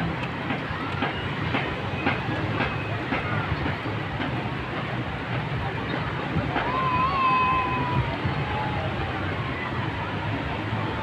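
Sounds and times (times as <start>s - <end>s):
faint voices: 0.0s - 11.0s
steady beach wash noise: 0.0s - 11.0s.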